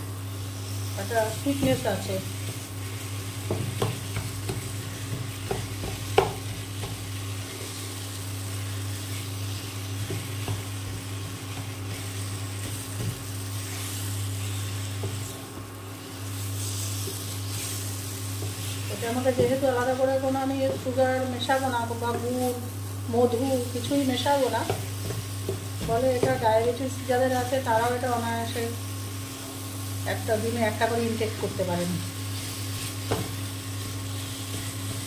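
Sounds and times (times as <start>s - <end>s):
light sizzle: 0.0s - 35.0s
spatula scraping a pan: 1.5s - 15.4s, 16.0s - 21.0s, 32.2s - 35.0s
spatula knocking against pan: 3.4s - 7.1s.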